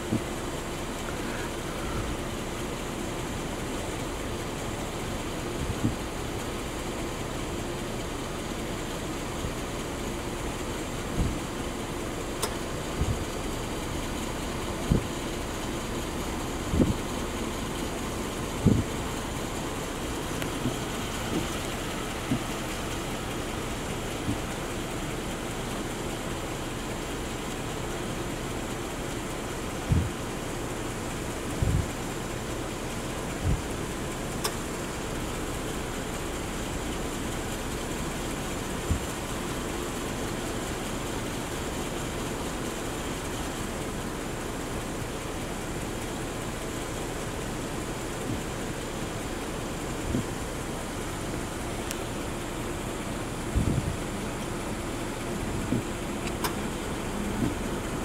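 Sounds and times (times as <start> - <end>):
car engine idling: 0.0 - 58.0
short low thumps: 18.6 - 19.0, 29.9 - 30.2, 31.6 - 32.0.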